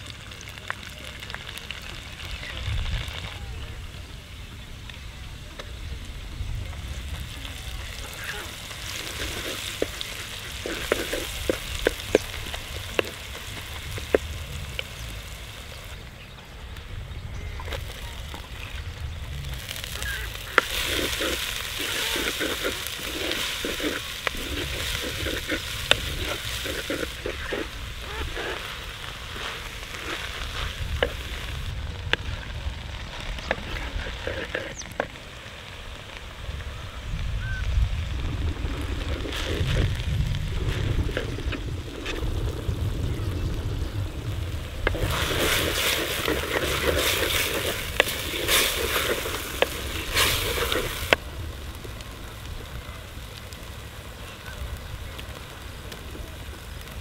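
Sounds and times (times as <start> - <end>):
paste sizzling in hot oil: 0.0 - 16.4, 17.4 - 36.6, 37.4 - 57.0.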